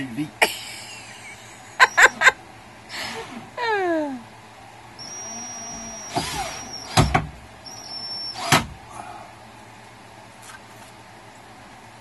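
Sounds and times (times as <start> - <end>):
cordless drill whining: 5.0 - 8.7.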